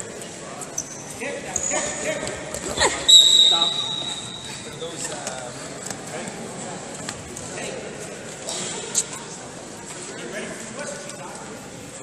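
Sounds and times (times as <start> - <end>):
referee's whistle blast: 3.1 - 4.5.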